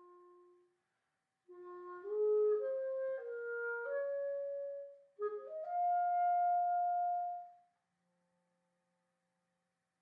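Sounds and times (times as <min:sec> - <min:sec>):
clarinet holding a long note: 0:00.0 - 0:00.7, 0:01.5 - 0:07.6.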